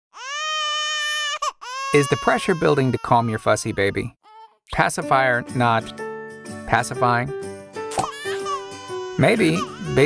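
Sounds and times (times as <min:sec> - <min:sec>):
infant crying: 0:00.1 - 0:04.7, 0:07.9 - 0:10.0
person speaking: 0:01.9 - 0:05.9, 0:09.2 - 0:10.0.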